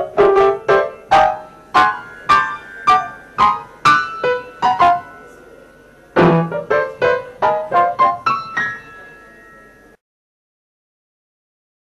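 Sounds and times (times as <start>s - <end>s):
piano notes and chords: 0.0s - 10.0s.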